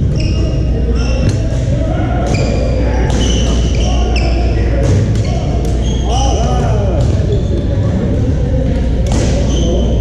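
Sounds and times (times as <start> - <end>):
echoing chatter of players: 0.0 - 10.0
shoes squeaking on gym floor: 0.1 - 1.4.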